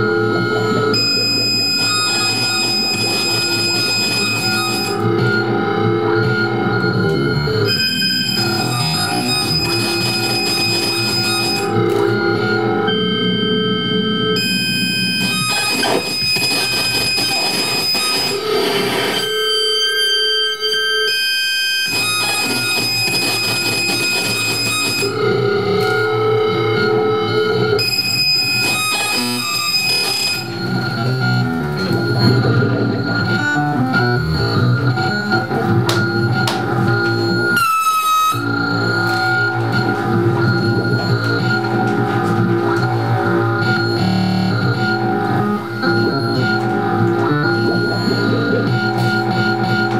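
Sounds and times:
distorted electronic noise music: 0:00.0 - 0:49.9.

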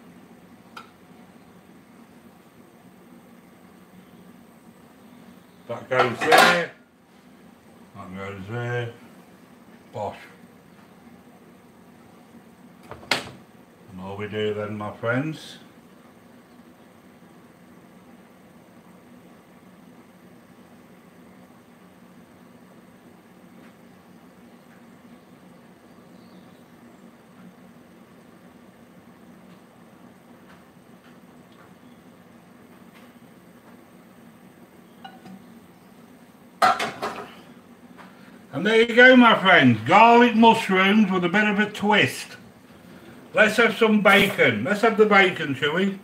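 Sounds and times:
low steady hum: 0:00.0 - 0:46.0
pan scraping: 0:06.0 - 0:06.7
pots and pans clattering: 0:06.0 - 0:06.7, 0:36.6 - 0:37.4.

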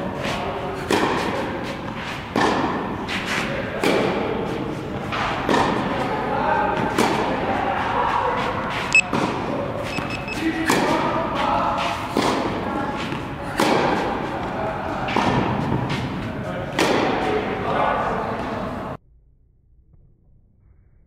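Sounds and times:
tennis balls struck by rackets: 0:00.1 - 0:17.5.

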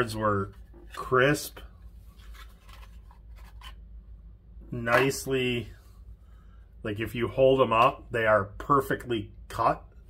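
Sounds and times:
cards scraping against cardboard: 0:02.1 - 0:03.8.

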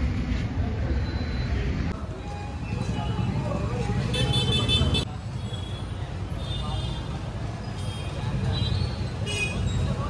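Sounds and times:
traffic rumble: 0:00.0 - 0:10.0
people talking: 0:00.3 - 0:10.0.

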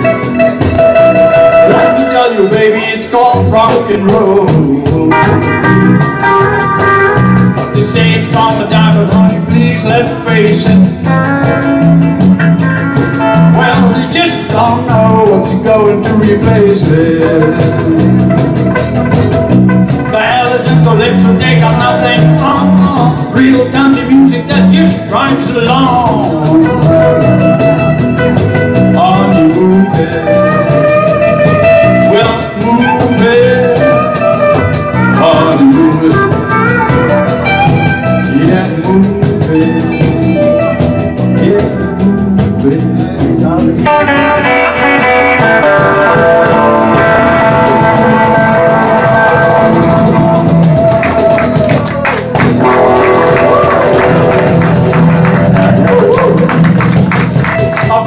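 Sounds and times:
bass guitar: 0:00.0 - 0:58.0
electric guitar: 0:00.0 - 0:58.0.

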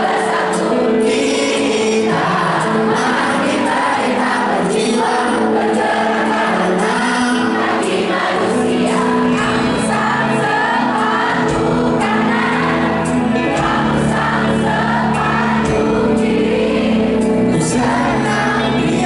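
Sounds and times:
man singing lead vocal: 0:00.0 - 0:09.3, 0:17.5 - 0:19.0
crowd singing along: 0:00.0 - 0:19.0
keyboard: 0:00.0 - 0:19.0
bass notes: 0:09.3 - 0:19.0.

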